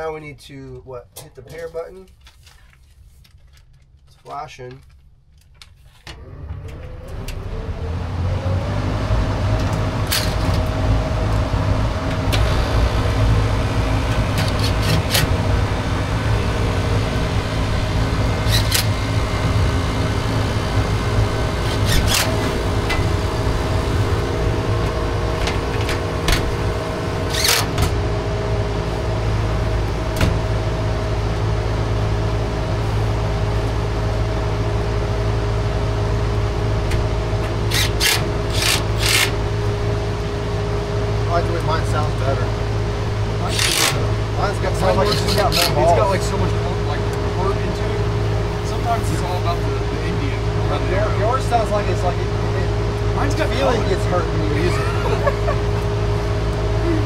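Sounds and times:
heat pump humming: 0:06.1 - 0:57.0.

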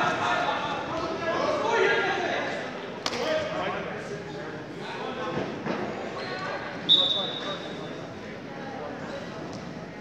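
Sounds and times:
referee's whistle blast: 0:06.9 - 0:07.5.

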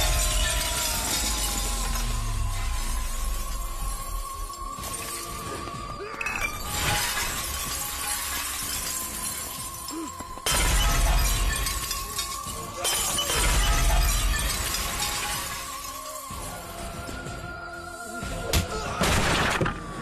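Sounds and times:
glass shards scattering on floor: 0:00.0 - 0:05.5, 0:06.2 - 0:16.4
glass shattering: 0:00.0 - 0:16.5.

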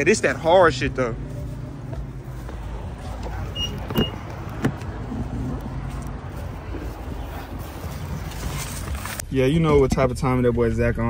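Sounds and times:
car door latch clicks: 0:03.6 - 0:04.9.

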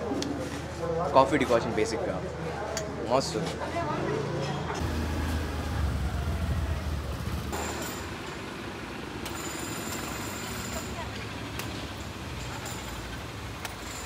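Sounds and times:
traffic: 0:03.4 - 0:14.0.

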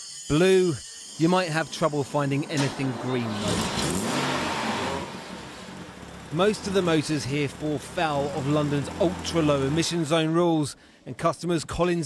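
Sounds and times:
car engine revving: 0:01.6 - 0:10.3.

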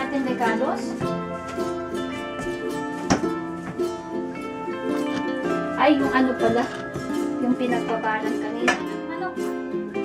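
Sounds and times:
plucked string melody: 0:00.0 - 0:10.0.

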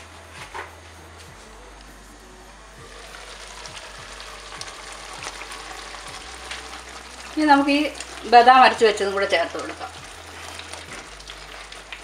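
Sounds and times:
curry sizzling in a pan: 0:02.8 - 0:12.0.

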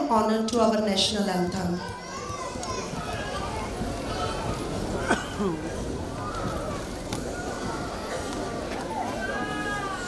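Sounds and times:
audience chatter in a hall: 0:00.0 - 0:10.0.

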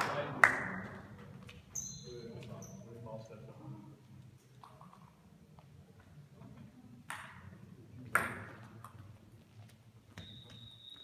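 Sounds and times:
sharp knocks in a hall: 0:07.1 - 0:08.7.

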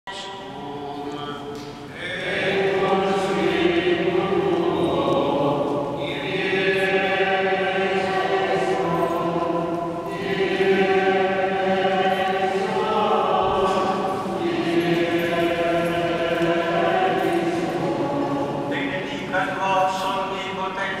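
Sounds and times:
liturgical chant in a church: 0:00.1 - 0:21.0.

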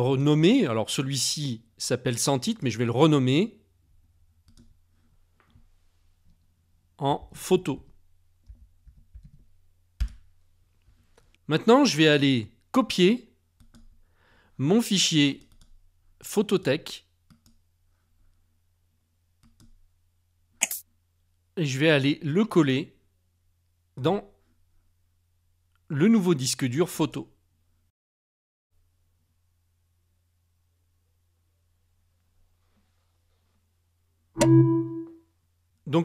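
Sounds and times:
short pitched chime: 0:34.4 - 0:35.2.

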